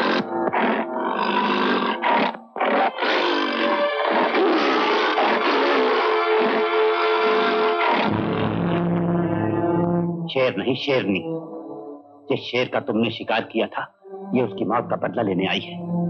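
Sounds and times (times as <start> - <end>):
tiger roaring and snarling: 0.0 - 8.2
tense orchestral film music: 0.0 - 16.0.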